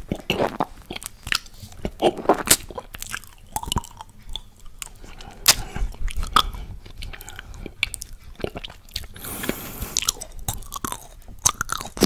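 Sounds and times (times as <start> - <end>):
wet mouth sounds: 0.0 - 12.0
chocolate shell crunching: 10.0 - 12.0.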